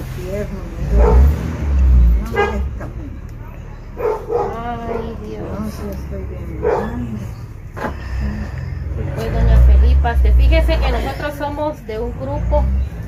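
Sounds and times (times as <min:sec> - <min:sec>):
dog barking and yelping: 0:00.8 - 0:01.4, 0:04.0 - 0:05.2, 0:06.6 - 0:07.2
quiet talking: 0:01.9 - 0:13.0.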